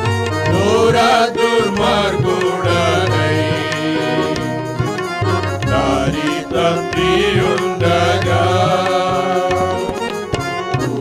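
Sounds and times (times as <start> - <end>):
electronic keyboard: 0.0 - 11.0
men singing a hymn: 0.4 - 4.9, 5.6 - 10.2, 10.8 - 11.0.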